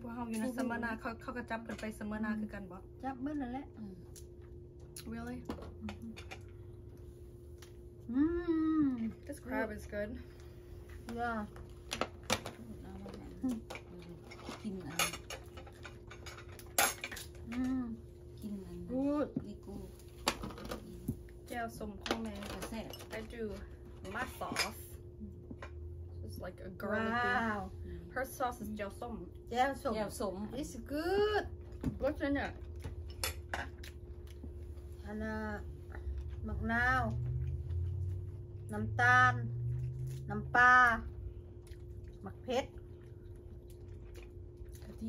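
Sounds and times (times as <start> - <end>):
low steady hum: 0.0 - 45.0
utensils clinking on dishes: 13.7 - 17.6.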